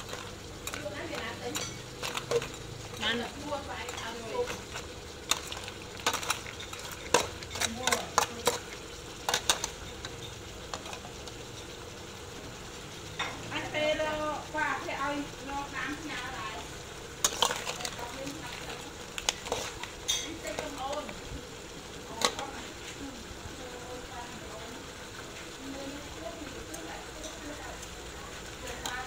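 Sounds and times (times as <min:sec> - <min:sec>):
metal spatula scraping wok: 0:00.0 - 0:11.8, 0:17.1 - 0:21.2
pan sizzling: 0:00.0 - 0:29.0.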